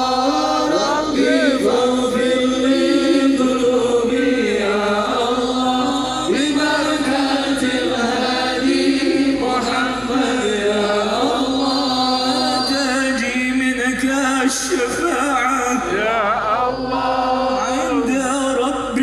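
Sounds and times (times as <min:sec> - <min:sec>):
devotional song chanted: 0:00.0 - 0:19.0.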